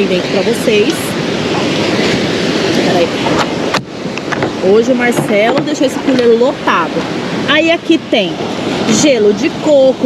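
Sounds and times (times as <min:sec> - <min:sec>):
surf breaking on a beach: 0:00.0 - 0:10.0.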